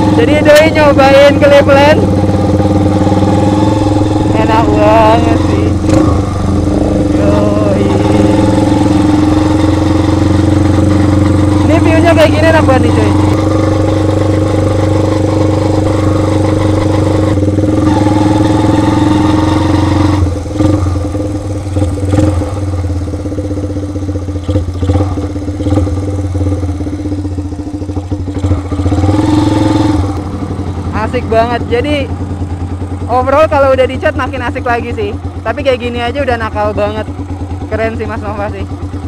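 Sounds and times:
motorcycle engine running: 0.0 - 39.0.

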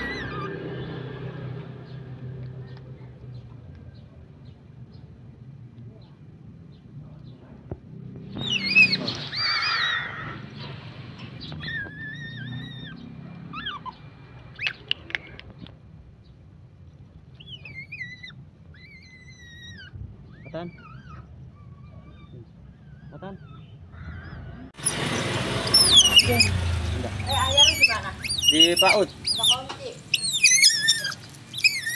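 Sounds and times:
otter chirping squeaks: 0.0 - 1.0, 8.2 - 10.1, 11.2 - 15.4, 17.3 - 23.8, 24.8 - 31.9.

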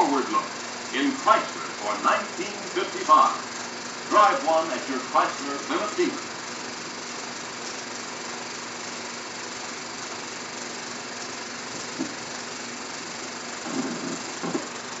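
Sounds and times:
faint hum: 0.0 - 15.0
film projector whirring: 0.0 - 15.0.

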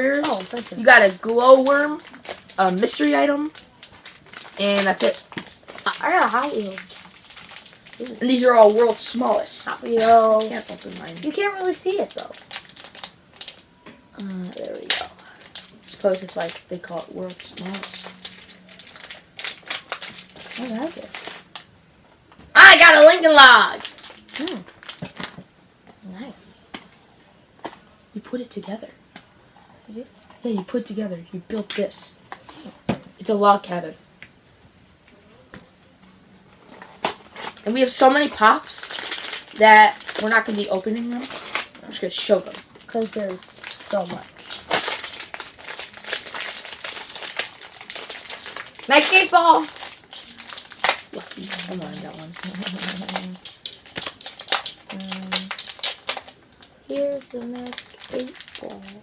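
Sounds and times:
plastic toy packaging clicks and crinkles: 0.0 - 21.7, 23.7 - 25.4, 36.6 - 59.0.

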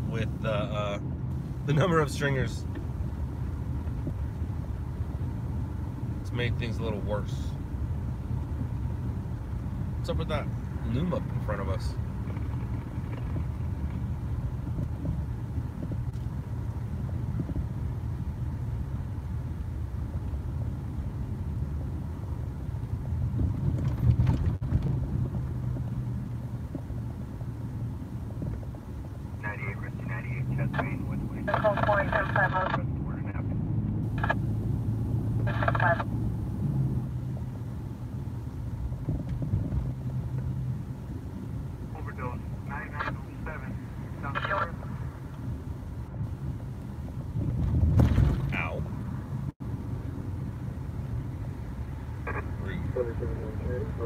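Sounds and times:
car engine and road noise: 0.0 - 54.0
police scanner radio chatter: 29.4 - 33.5, 34.1 - 34.5, 35.4 - 36.1, 41.9 - 45.4, 52.2 - 54.0.

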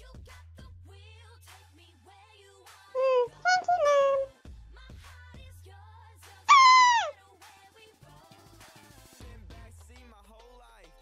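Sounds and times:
high-pitched downward sliding cry: 3.0 - 4.3, 6.5 - 7.1.

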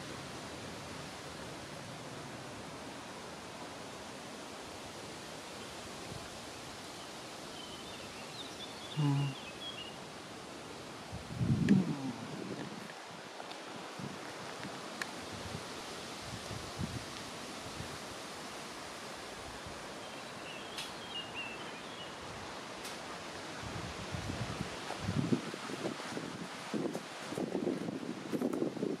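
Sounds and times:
rustling leaves: 0.0 - 29.0
wind in trees: 0.0 - 29.0.

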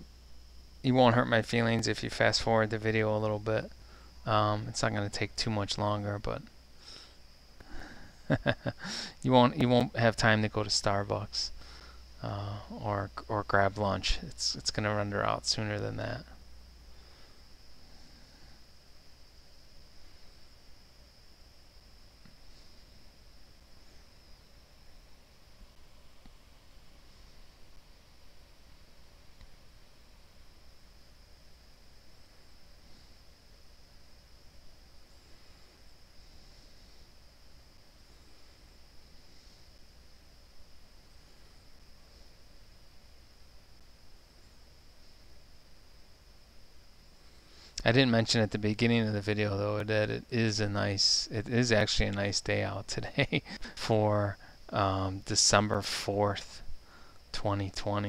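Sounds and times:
high-pitched whine: 0.0 - 56.8
low hiss: 0.0 - 58.0.

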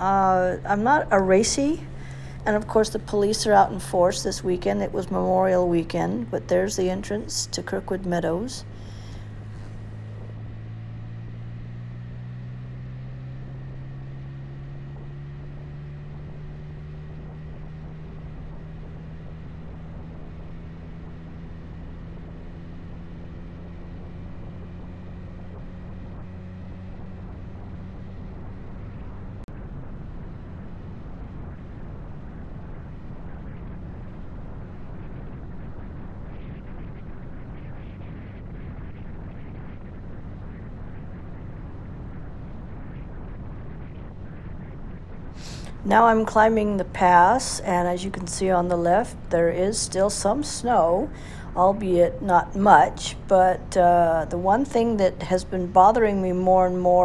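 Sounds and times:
motorcycle engine running: 0.0 - 56.9
road noise: 0.0 - 57.0.

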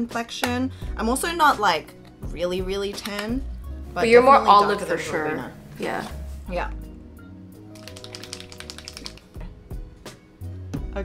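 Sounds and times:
background music: 0.0 - 11.0
small bottle being shaken: 7.7 - 9.4.

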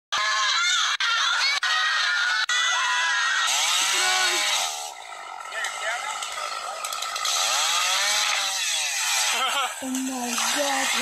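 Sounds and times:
woman screaming: 0.2 - 4.4.

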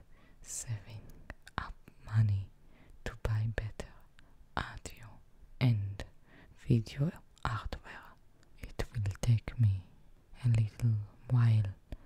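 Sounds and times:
woman speaking softly: 0.4 - 11.9.

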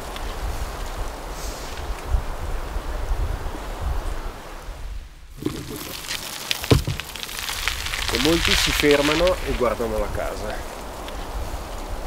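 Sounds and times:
outdoor ambience: 0.0 - 12.0
wind buffeting microphone: 0.0 - 12.0.

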